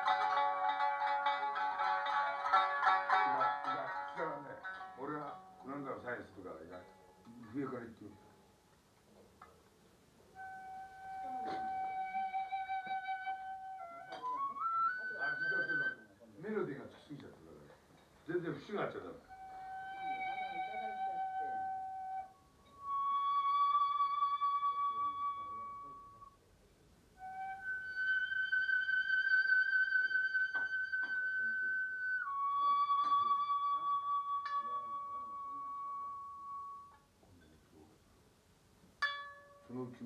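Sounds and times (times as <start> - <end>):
flute long held notes: 10.3 - 16.2, 19.2 - 26.4, 27.2 - 37.1.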